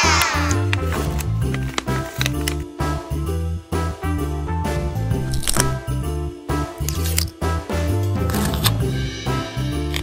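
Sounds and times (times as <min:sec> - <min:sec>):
background music with beat and bass: 0:07.4 - 0:10.0.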